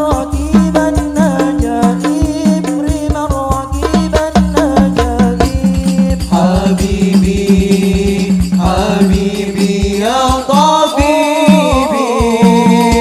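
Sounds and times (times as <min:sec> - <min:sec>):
frame drums beating: 0:00.0 - 0:13.0
chanting with gliding pitches: 0:06.2 - 0:13.0.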